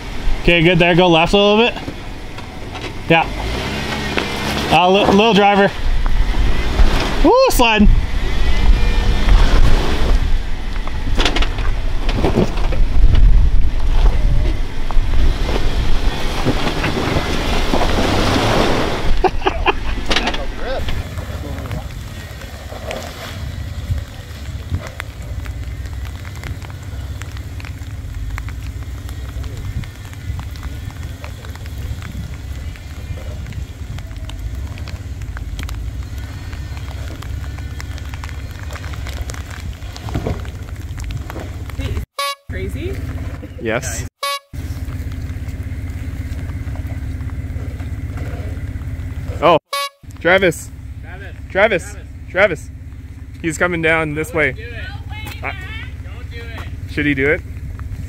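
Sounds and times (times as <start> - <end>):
engine working hard: 0.0 - 42.0, 44.6 - 58.0.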